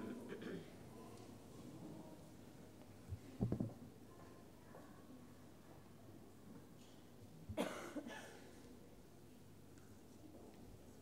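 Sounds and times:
short cough: 0:00.3 - 0:00.7, 0:07.5 - 0:08.4.

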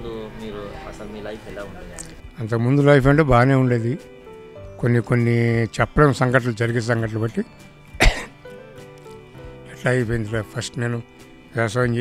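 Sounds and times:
faint background music: 0:00.0 - 0:12.0
man coughing: 0:08.0 - 0:08.4.

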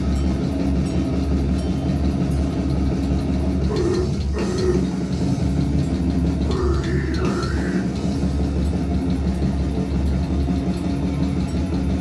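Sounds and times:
distorted guitars and bass: 0:00.0 - 0:12.0
drums and cymbals: 0:00.0 - 0:12.0.

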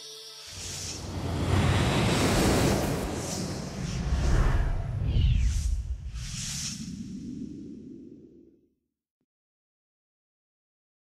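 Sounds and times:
whoosh transition effect: 0:00.5 - 0:08.3
deep rumble: 0:01.4 - 0:08.3.

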